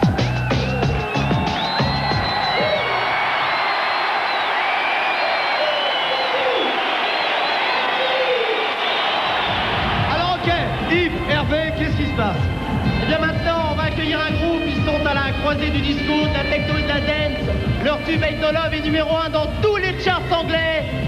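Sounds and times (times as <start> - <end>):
music with a heavy beat: 0.0 - 2.7, 9.6 - 21.0
arena crowd cheering: 0.0 - 21.0
man's voice over music: 10.0 - 21.0.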